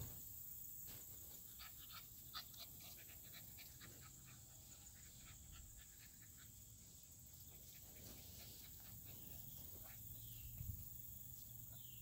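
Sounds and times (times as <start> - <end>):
puppy panting faintly: 1.4 - 10.1.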